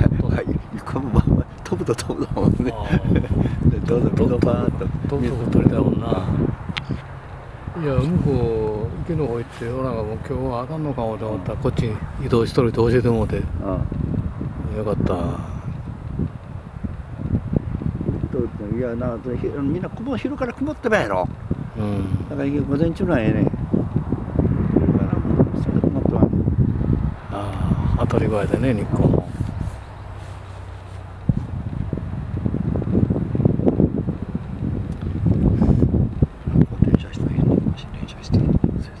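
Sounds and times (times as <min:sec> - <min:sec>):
wind rumbling on microphone: 0:00.0 - 0:39.0.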